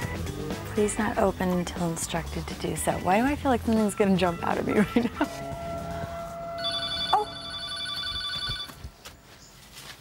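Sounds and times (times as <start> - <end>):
telephone ringing: 6.5 - 8.8.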